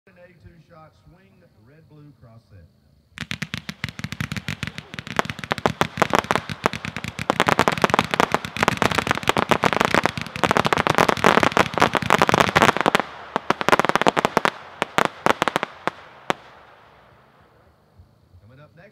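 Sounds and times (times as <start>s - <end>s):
firework pops and cracks: 3.2s - 16.8s.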